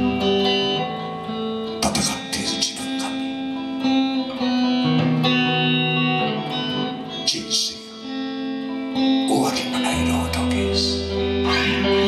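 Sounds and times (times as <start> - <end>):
electric guitar strumming chords: 0.0 - 12.0.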